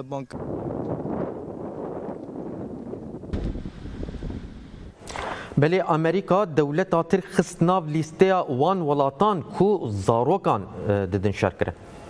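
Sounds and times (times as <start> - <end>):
wind buffeting microphone: 0.0 - 5.1
deep rumble: 0.4 - 5.0.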